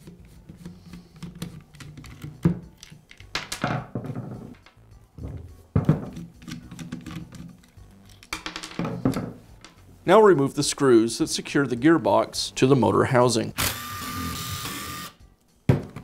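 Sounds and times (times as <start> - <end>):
soft background music: 0.0 - 16.0
screwdriver unscrewing plastic caps: 0.1 - 3.3.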